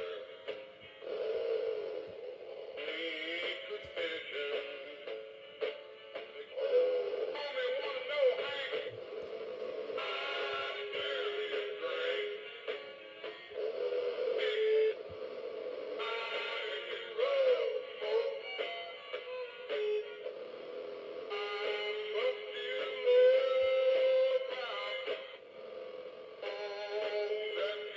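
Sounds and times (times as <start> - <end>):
country song from toy figure: 0.0 - 25.4, 26.4 - 27.9.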